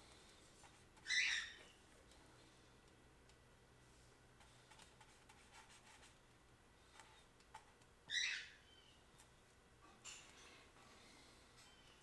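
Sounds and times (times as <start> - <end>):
paintbrush scratching and tapping: 4.4 - 6.2.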